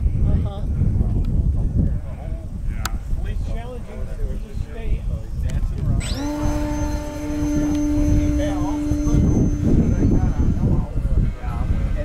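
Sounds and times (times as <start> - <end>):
wind rumbling on microphone: 0.0 - 12.0
model aircraft motor humming: 5.9 - 11.3.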